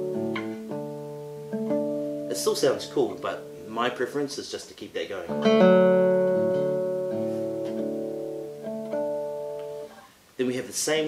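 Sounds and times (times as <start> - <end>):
classical guitar plucking: 0.0 - 10.1.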